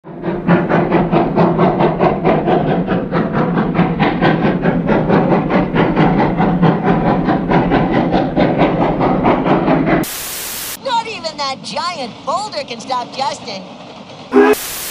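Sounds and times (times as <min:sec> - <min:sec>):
steam locomotive exhaust chuffing: 0:00.0 - 0:14.9.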